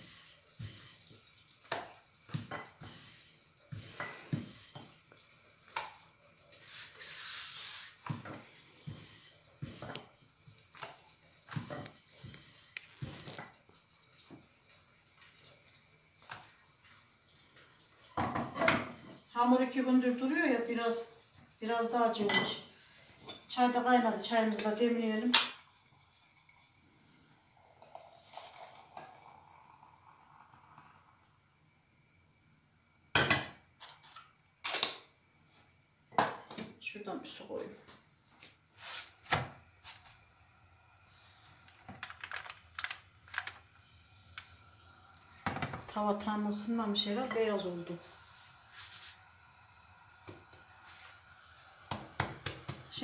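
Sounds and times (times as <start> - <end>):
faint steady hiss: 0.0 - 53.0
metal clanks of teapot and kettle: 1.7 - 2.9, 18.2 - 19.2, 22.2 - 22.6, 24.6 - 25.7, 33.1 - 35.0, 36.2 - 36.7
water pouring into teapot: 24.4 - 31.3.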